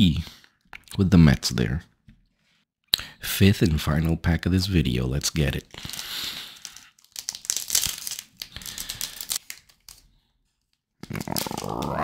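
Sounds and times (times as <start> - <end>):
foil wrapper crinkling: 5.7 - 12.0.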